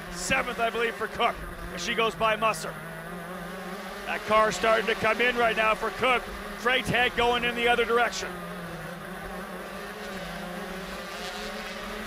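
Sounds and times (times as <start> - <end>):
kart engine at high revs: 0.0 - 12.0.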